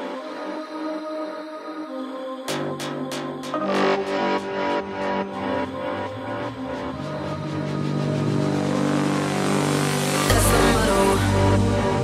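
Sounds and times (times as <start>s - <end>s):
sustained synth chord: 3.6s - 12.0s.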